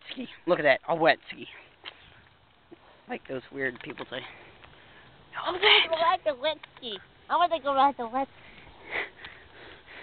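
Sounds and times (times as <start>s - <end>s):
faint steady rush: 0.2s - 10.0s.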